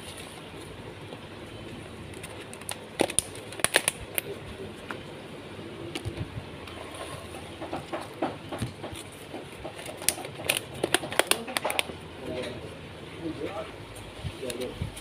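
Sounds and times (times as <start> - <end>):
plastic containers clicking: 7.6 - 11.9.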